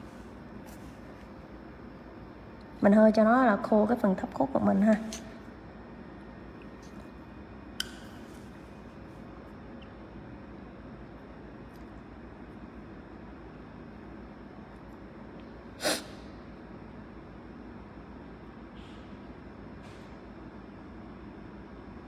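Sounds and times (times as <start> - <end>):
short sniff: 15.8 - 16.2.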